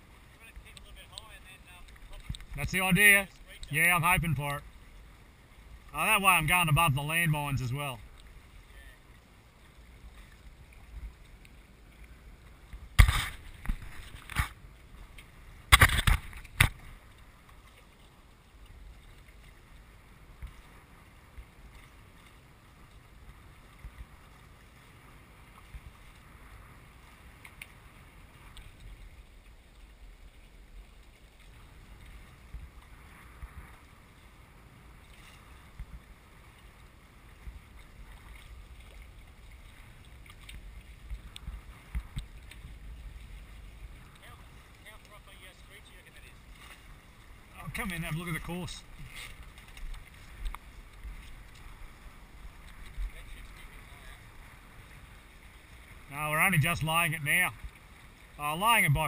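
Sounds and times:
water rushing: 0:00.0 - 0:59.0
wind: 0:00.0 - 0:59.0.

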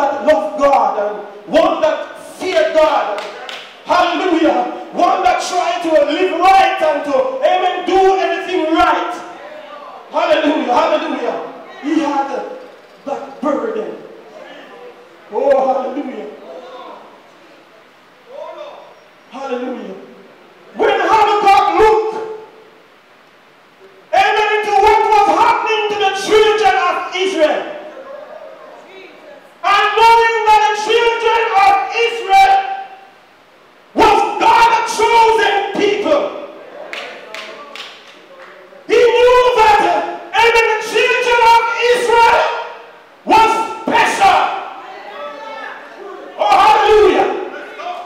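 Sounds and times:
man preaching through microphone: 0:00.0 - 0:17.0, 0:18.3 - 0:22.6, 0:24.1 - 0:27.9, 0:29.0 - 0:33.2, 0:33.9 - 0:48.0.

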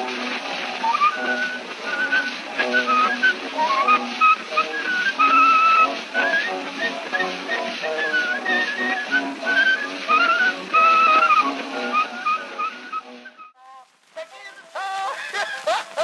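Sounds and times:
phonograph surface hiss: 0:00.0 - 0:16.0
man whistling a lively melody: 0:00.7 - 0:13.6.

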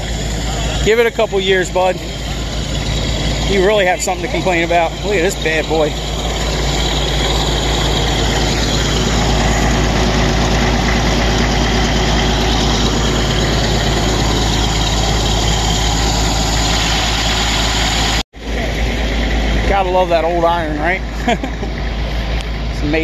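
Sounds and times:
tractor engine idling: 0:00.0 - 0:23.0.

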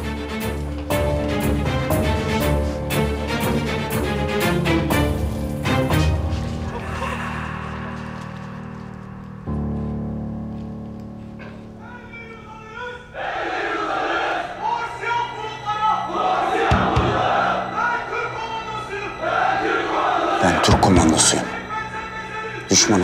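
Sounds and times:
low dramatic music: 0:00.0 - 0:23.0
soldiers shouting a chant: 0:11.8 - 0:20.9.

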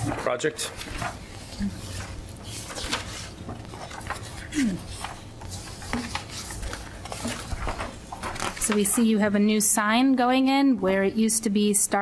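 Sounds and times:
paper rustling: 0:00.0 - 0:09.2.

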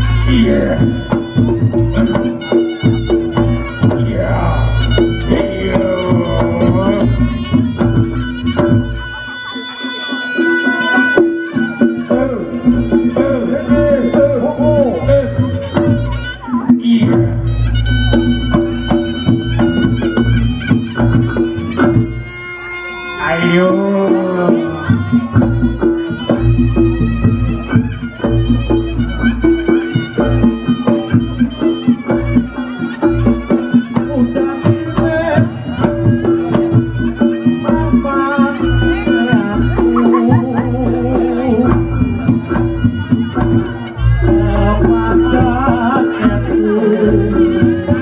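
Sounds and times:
hand-drum strokes: 0:00.0 - 0:48.0
reedy wind melody: 0:00.0 - 0:48.0.

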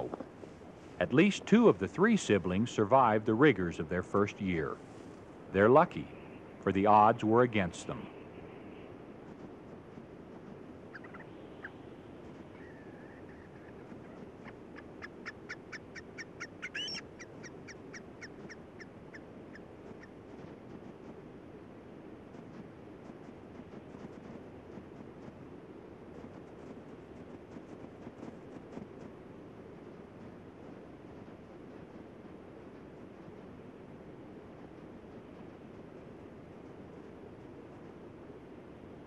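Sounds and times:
steady low hiss: 0:00.0 - 0:39.0
animal chirping: 0:15.3 - 0:19.2
wavering animal call: 0:16.2 - 0:18.6.

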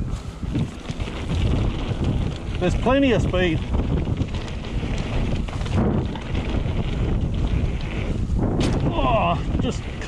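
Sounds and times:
tyres rumbling on dirt: 0:00.0 - 0:10.0
wind buffeting microphone: 0:00.0 - 0:10.0
bike knocks and rattles: 0:00.4 - 0:10.0.

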